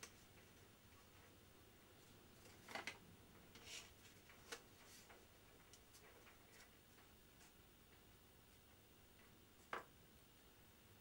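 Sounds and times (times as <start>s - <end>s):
plastic moulding clicking and crinkling: 2.4s - 7.2s.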